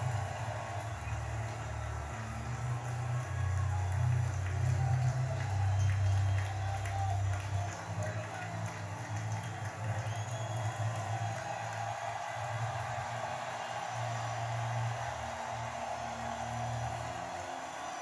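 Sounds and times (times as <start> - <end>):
music through tv speaker: 0.0 - 18.0
stadium crowd cheering: 0.0 - 18.0.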